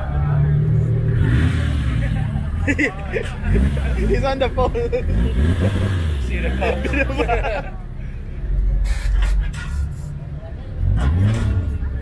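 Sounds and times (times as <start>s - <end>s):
car engine rumbling: 0.0s - 12.0s
voices: 0.0s - 12.0s.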